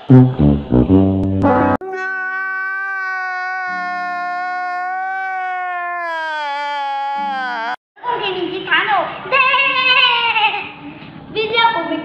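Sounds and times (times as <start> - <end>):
man wailing: 1.8 - 7.8.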